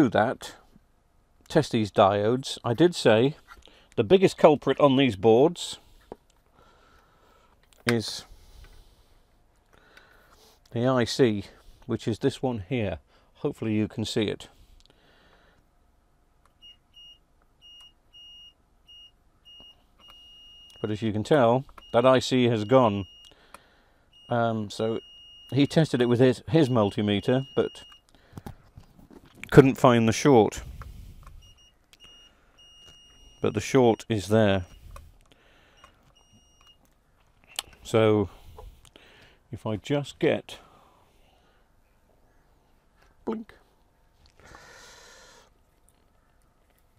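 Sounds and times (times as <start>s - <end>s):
multimeter beeps: 16.6s - 21.0s, 21.6s - 23.4s, 24.1s - 28.1s, 31.3s - 34.8s, 35.7s - 36.9s
multimeter short beeps: 24.2s - 28.1s.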